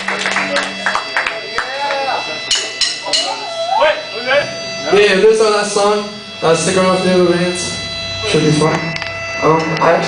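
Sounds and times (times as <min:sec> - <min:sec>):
amplifier hum: 0:00.0 - 0:10.0
voices calling and talking: 0:00.6 - 0:10.0.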